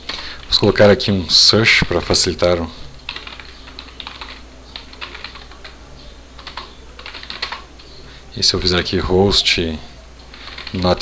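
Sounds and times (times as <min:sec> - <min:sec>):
typing on computer keyboard: 0:03.1 - 0:05.8, 0:06.4 - 0:08.0, 0:10.3 - 0:11.0.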